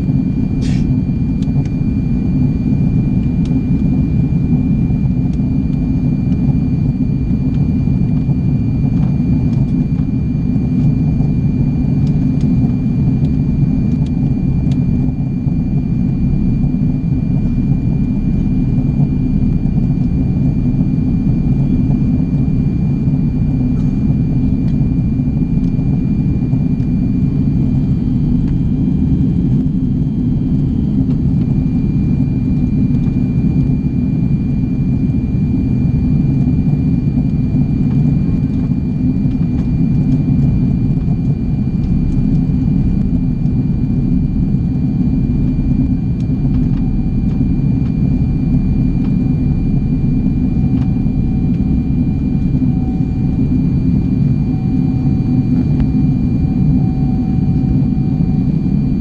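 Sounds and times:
airplane cabin rumble: 0.0s - 59.0s
thin high whine: 23.7s - 59.0s.

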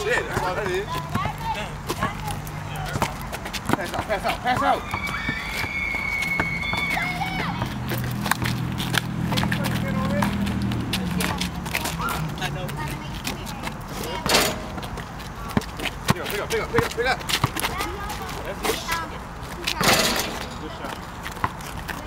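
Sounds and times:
sharp knocks and scuffs: 0.0s - 12.2s
basketball bouncing on asphalt: 0.0s - 22.0s.

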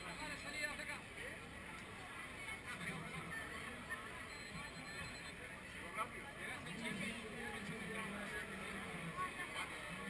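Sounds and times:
distant crowd chatter: 0.0s - 10.0s.

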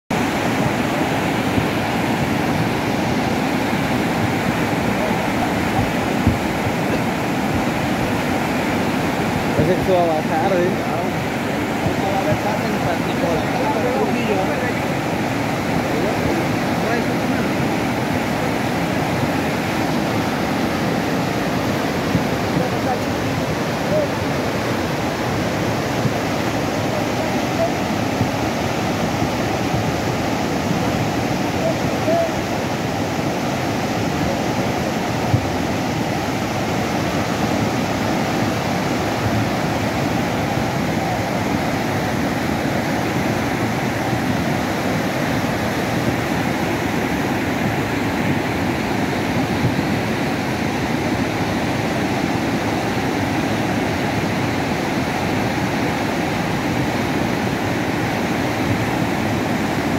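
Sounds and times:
muddy river rushing loudly: 0.1s - 59.9s.

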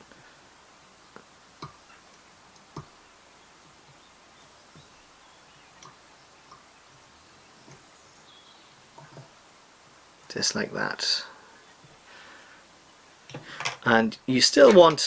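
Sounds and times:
low room hiss: 0.0s - 15.0s.

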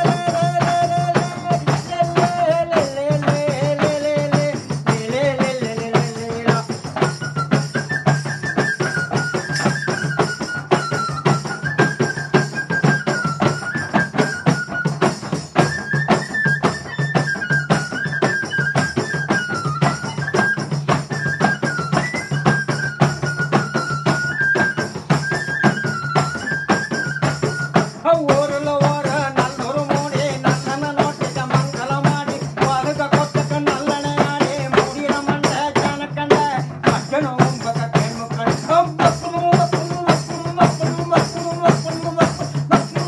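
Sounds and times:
hand drums and frame drums: 0.0s - 43.0s
small flute playing folk tune: 6.0s - 43.0s.

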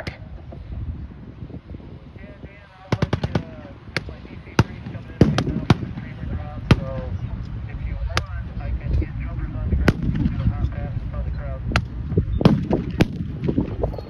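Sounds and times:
armored vehicles rumbling: 0.0s - 14.0s
small-arms gunfire: 2.9s - 3.6s, 4.6s - 6.1s.

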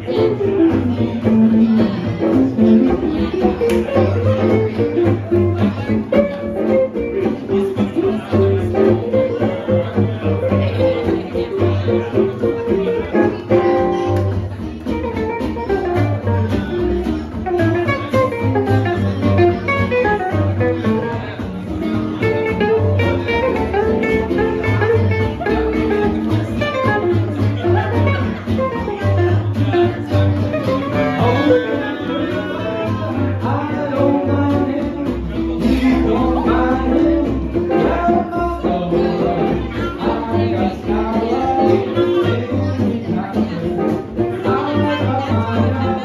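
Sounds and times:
acoustic guitars strumming: 0.0s - 46.0s
upright bass: 0.0s - 46.0s.

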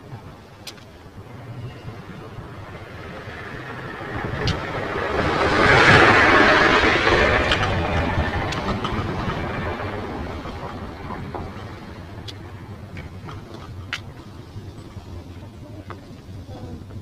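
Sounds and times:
vehicle passing close by: 1.2s - 12.7s.

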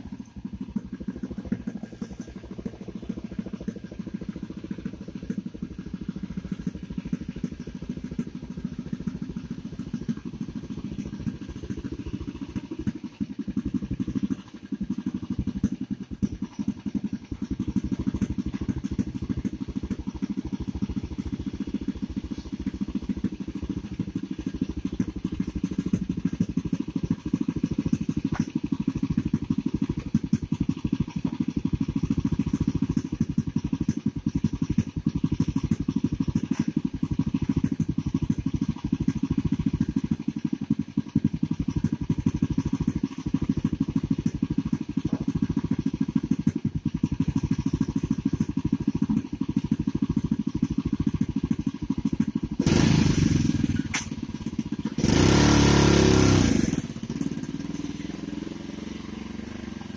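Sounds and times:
small engine idling: 0.0s - 59.9s.

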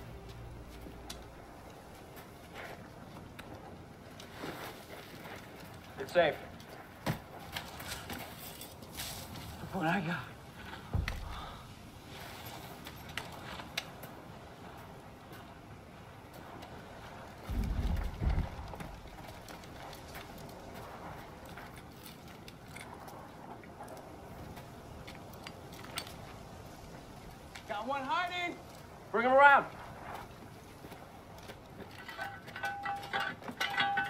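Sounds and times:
low rumble: 0.0s - 3.6s, 17.5s - 21.1s
rustles: 0.0s - 34.0s.

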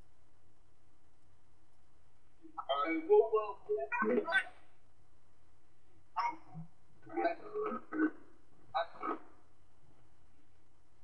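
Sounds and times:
faint steady hum: 0.0s - 11.0s
person's voice played back: 2.4s - 4.6s.

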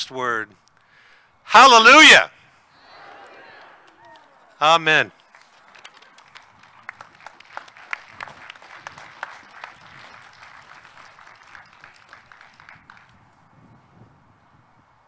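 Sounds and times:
light applause from small crowd: 3.5s - 13.4s.

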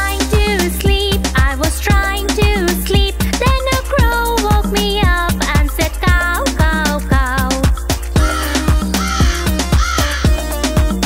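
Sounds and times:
children's song dance beat: 0.0s - 11.0s
crow cawing: 8.2s - 10.5s.

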